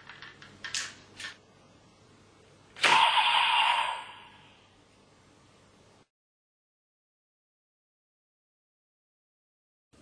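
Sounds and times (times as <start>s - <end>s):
toy belt hissing blast with tone: 2.8s - 4.5s.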